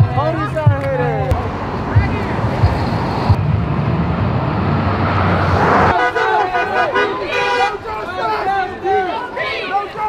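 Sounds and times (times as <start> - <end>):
voices of marching crowd: 0.0 - 3.4, 5.9 - 10.0
car engine and tyre noise passing: 0.0 - 9.6.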